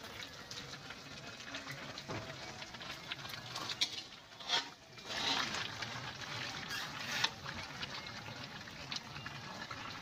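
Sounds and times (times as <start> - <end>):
meat sizzling with pops: 0.0 - 10.0.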